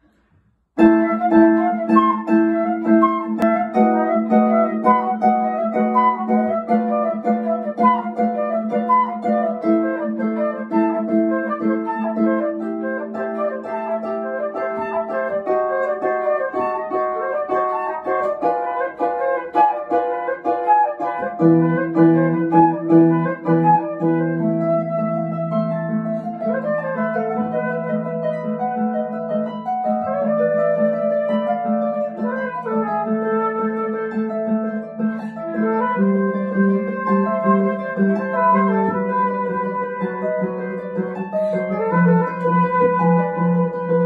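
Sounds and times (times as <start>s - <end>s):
harp plucking: 0.8s - 44.0s.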